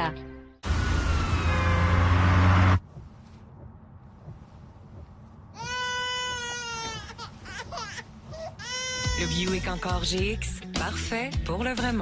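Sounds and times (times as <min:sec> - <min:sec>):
baby crying: 0:05.6 - 0:10.1.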